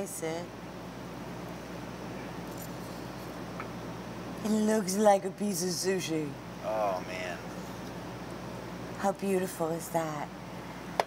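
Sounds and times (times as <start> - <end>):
room tone hum and hiss: 0.0 - 11.0.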